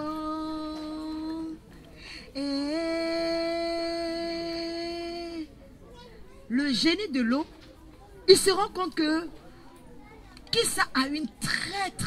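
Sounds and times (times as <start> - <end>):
woman singing long notes: 0.0 - 1.7, 2.3 - 5.5.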